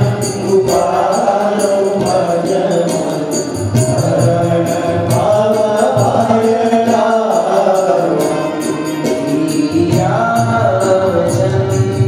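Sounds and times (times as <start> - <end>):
men chanting a hymn: 0.0 - 12.0
sharp high percussion strikes: 0.0 - 12.0.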